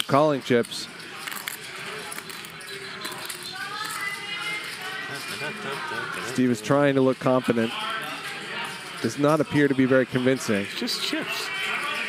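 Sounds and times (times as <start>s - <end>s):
faint music: 0.0s - 12.0s
murmur of voices: 0.0s - 12.0s
poker chips clicking: 0.6s - 4.4s.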